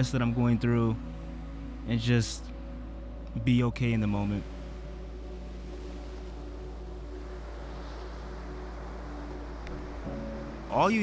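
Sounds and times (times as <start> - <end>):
ocean surf washing up beach: 4.0 - 11.0.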